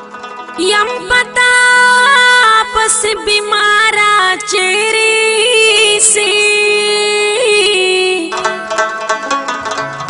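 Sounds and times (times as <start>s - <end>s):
woman singing: 0.6s - 8.6s
musical accompaniment: 6.9s - 10.0s.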